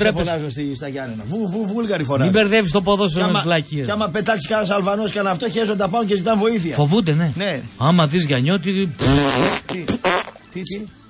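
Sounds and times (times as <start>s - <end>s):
fart-like raspberry: 9.0s - 10.4s.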